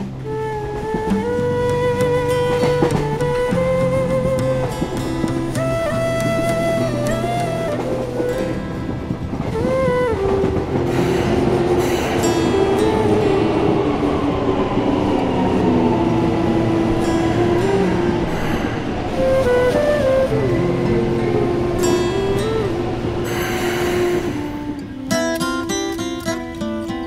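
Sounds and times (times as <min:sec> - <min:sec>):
background music: 0:00.0 - 0:26.2
train wheels rumbling on rails: 0:00.0 - 0:27.0
train whining tones: 0:00.0 - 0:27.0.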